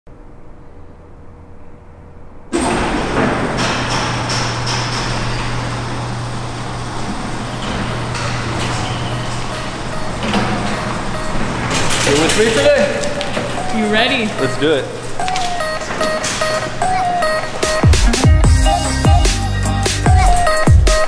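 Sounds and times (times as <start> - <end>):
car engine humming: 1.0 - 21.0
music: 13.5 - 21.0.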